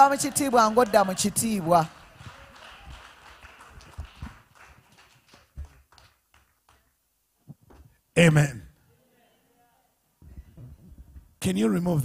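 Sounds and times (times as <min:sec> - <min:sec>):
faint hall ambience: 0:00.0 - 0:11.4.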